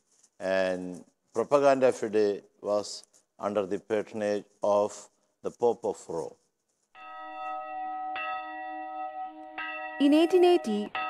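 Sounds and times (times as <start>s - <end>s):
bell ringing: 7.0s - 11.0s.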